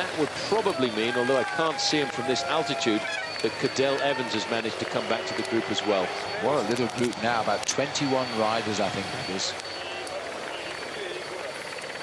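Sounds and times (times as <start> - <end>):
faint voices: 0.0 - 12.0
helicopter rotor and engine: 0.0 - 12.0.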